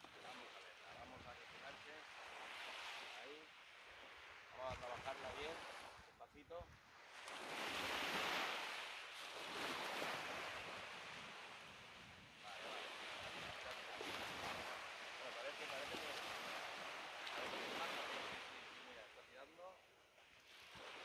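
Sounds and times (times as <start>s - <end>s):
sea waves breaking on beach: 0.0s - 21.0s.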